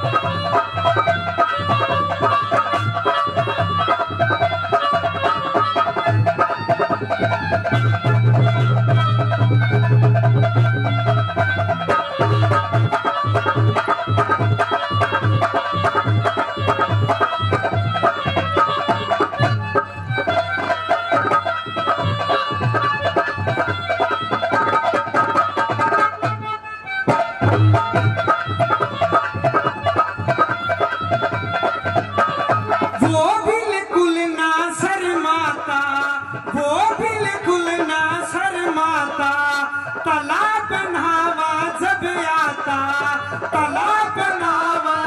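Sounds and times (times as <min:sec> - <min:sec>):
harmonium melody: 0:00.0 - 0:45.0.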